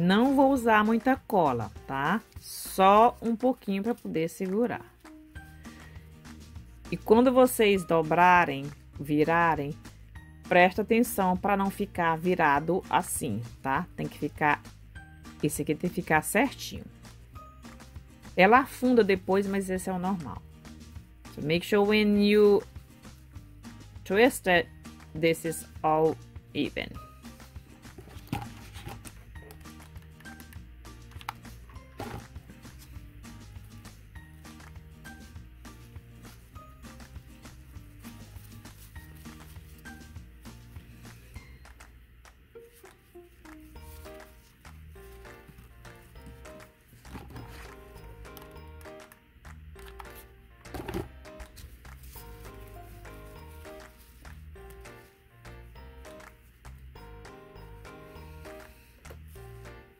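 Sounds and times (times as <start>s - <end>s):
soft instrumental music: 0.0s - 59.9s.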